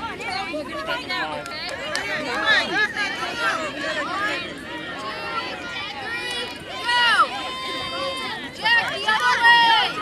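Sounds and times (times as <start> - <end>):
voices calling out: 0.0 - 10.0.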